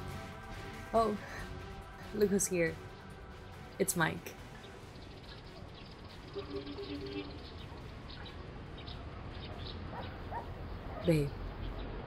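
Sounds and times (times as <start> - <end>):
steady low tones: 0.0 - 11.8
small birds chirping: 2.0 - 12.0.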